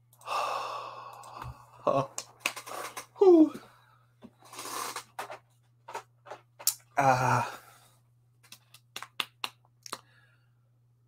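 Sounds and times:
man sighing: 0.2s - 2.1s, 3.2s - 3.8s, 7.0s - 7.8s.

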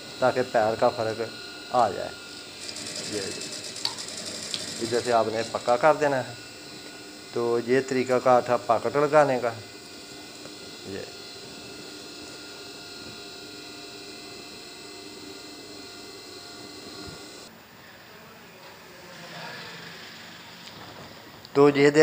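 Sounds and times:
sewing machine motor humming: 0.0s - 17.5s.

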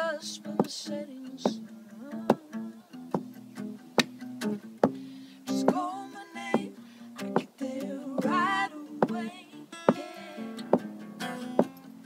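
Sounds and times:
person singing: 0.0s - 3.1s, 5.4s - 11.8s
acoustic guitar chords: 0.0s - 12.0s.

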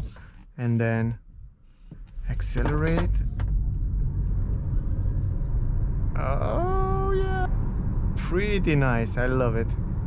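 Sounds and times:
tyre and road noise rumble: 2.0s - 10.0s.

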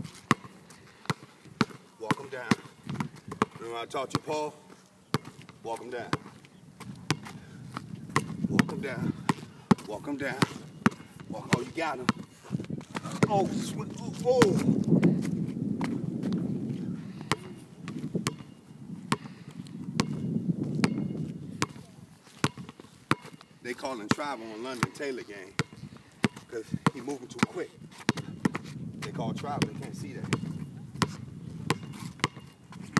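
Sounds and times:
basketball bouncing on asphalt: 0.0s - 4.5s, 5.1s - 32.9s.

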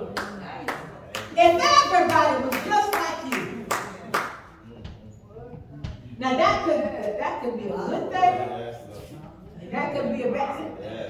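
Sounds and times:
hand clapping in rhythm: 0.0s - 1.4s, 2.1s - 4.5s.

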